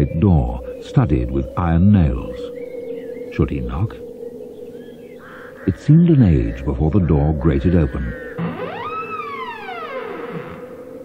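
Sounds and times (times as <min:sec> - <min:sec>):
wooden door creaking open: 0:08.4 - 0:11.0.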